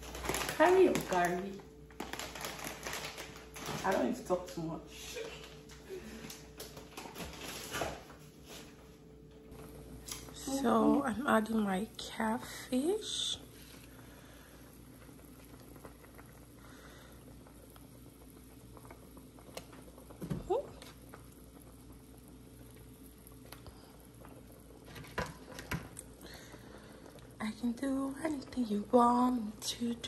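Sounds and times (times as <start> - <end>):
soup bubbling in a pot: 12.4 - 30.0.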